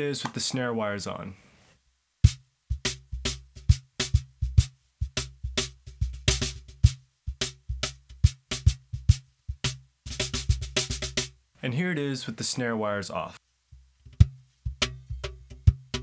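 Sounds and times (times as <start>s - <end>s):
cajon played by hand: 2.3s - 11.3s, 14.0s - 16.0s.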